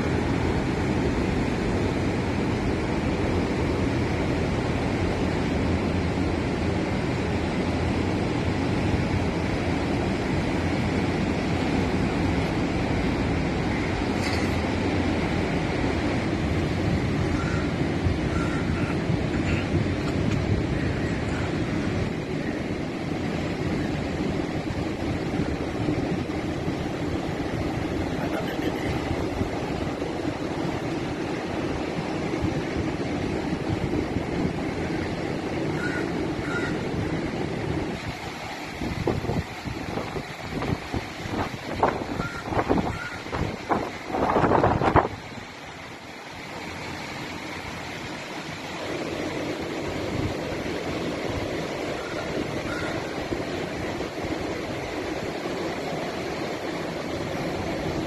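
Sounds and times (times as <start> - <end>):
wind buffeting microphone: 0.0 - 46.4
heavy surf rushing: 0.0 - 58.0.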